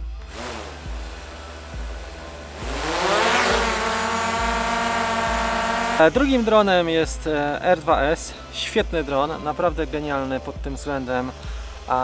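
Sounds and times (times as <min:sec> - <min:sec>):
drone propeller whine: 0:00.0 - 0:06.6
background music with beat: 0:00.0 - 0:12.0.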